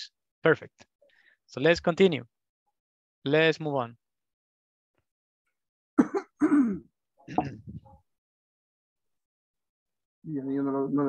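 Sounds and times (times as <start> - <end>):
man clearing throat: 6.0 - 7.7
man coughing: 6.0 - 7.7.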